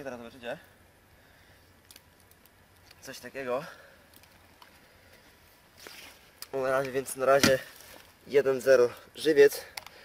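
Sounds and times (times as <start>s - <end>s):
soft rustle: 4.2s - 9.1s.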